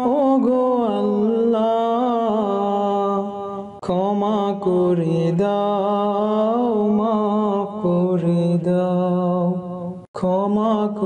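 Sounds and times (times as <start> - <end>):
a cappella singing: 0.0 - 11.0.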